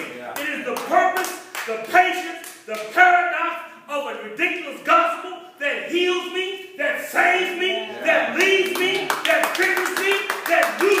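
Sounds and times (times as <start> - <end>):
hand claps: 0.0 - 3.0, 8.4 - 11.0.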